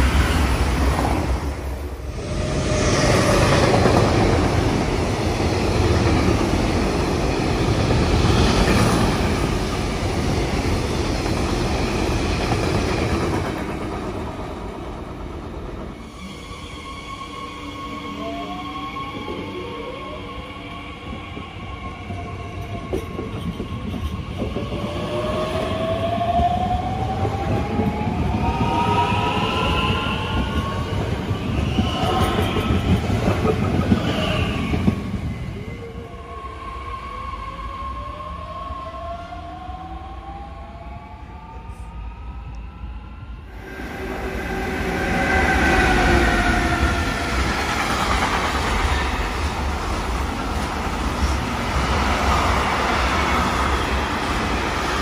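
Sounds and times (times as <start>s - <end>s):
freight train rolling past: 0.0s - 38.4s, 43.1s - 55.0s.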